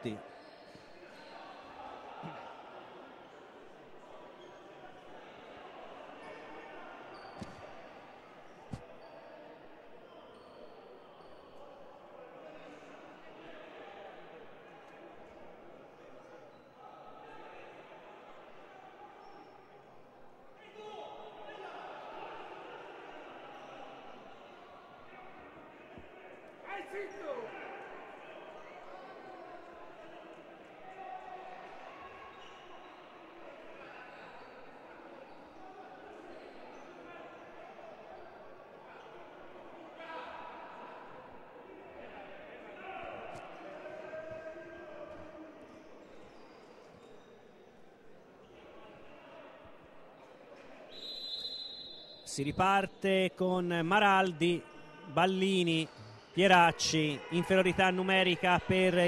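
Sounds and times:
voices in echoing hall: 0:00.0 - 0:59.0
ball bouncing on court floor: 0:07.4 - 0:07.7.

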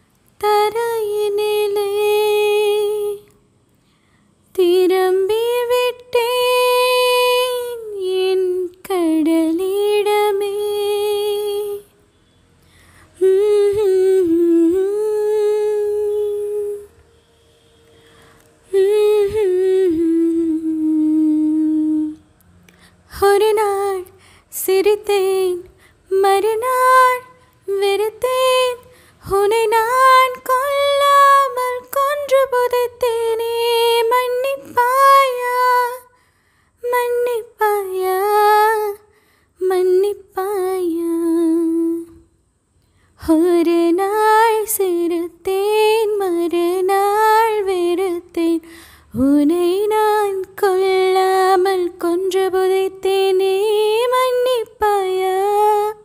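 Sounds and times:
woman singing unaccompanied: 0:00.0 - 0:03.4, 0:04.5 - 0:12.0, 0:13.2 - 0:17.0, 0:18.6 - 0:22.2, 0:23.1 - 0:36.2, 0:36.8 - 0:42.3, 0:43.2 - 0:56.0.

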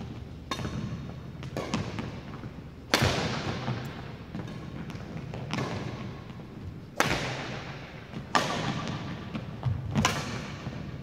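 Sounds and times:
badminton racket hitting shuttlecock: 0:00.5 - 0:06.1, 0:07.0 - 0:10.8.

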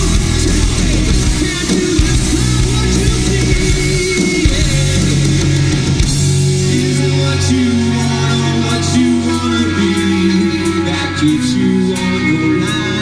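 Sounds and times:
hard rock band playing: 0:00.0 - 0:13.0.

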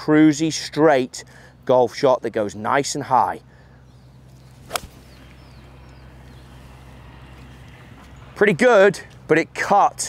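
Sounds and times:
golf club striking ball: 0:04.7 - 0:05.1.

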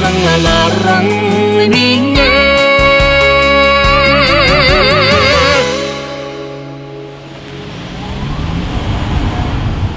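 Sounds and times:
held music chord: 0:00.0 - 0:08.6
road and wind noise: 0:06.7 - 0:09.9
car motor pulling away: 0:07.3 - 0:09.9.

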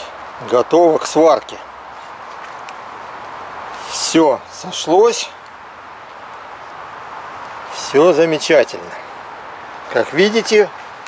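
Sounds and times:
low background noise: 0:00.0 - 0:11.0
man's voice: 0:03.8 - 0:05.4, 0:07.7 - 0:09.1, 0:09.9 - 0:10.8.

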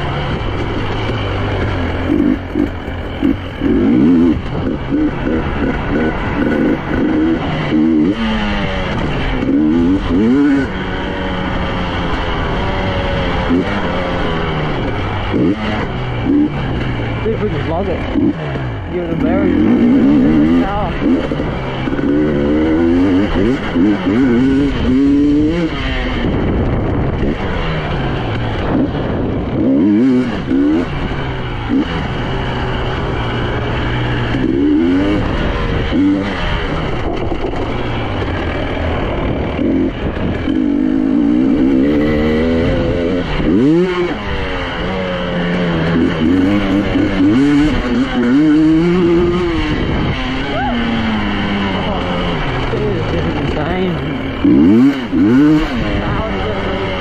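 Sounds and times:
two-stroke motorcycle engine revving: 0:00.0 - 0:57.0.

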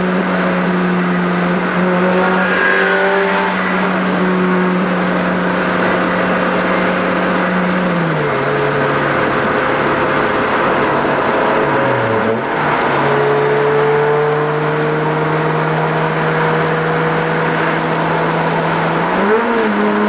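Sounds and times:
car engine cruising: 0:00.0 - 0:20.0
road and wind noise: 0:00.0 - 0:20.0.

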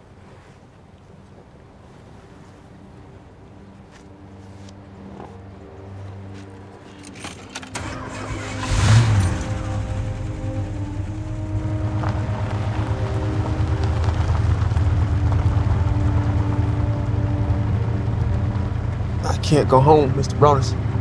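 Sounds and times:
soft film score: 0:00.0 - 0:21.0
car engine starting and running: 0:06.8 - 0:21.0.

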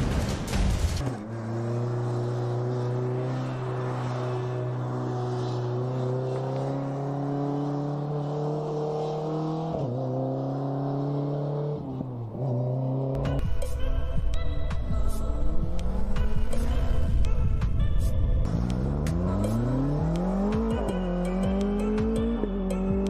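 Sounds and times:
car engine accelerating: 0:00.9 - 0:13.5, 0:15.3 - 0:23.0.

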